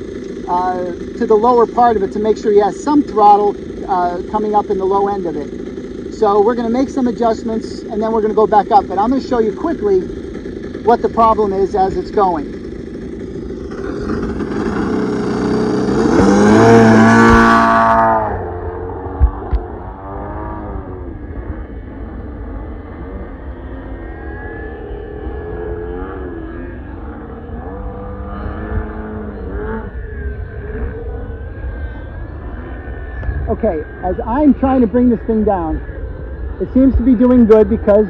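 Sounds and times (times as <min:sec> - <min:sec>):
model plane motor and propeller: 0:00.0 - 0:38.0.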